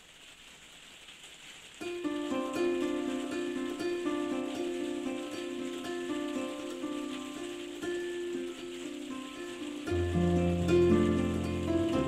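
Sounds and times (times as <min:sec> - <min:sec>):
harp plucked arpeggios: 0:02.0 - 0:12.0.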